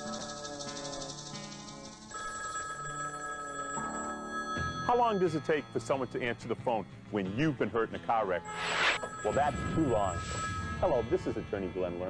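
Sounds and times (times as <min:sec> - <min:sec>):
telephone bell ringing: 0:00.0 - 0:06.3, 0:08.4 - 0:12.0
background music: 0:00.0 - 0:12.0.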